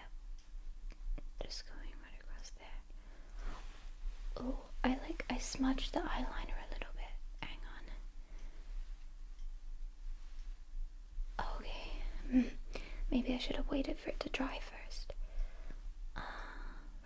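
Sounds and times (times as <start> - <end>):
woman whispering: 1.4 - 2.9, 4.3 - 8.1, 11.3 - 15.2.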